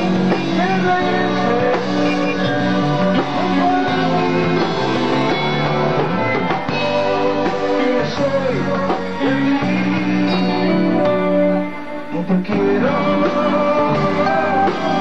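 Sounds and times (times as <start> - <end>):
rock band playing live: 0.0 - 15.0.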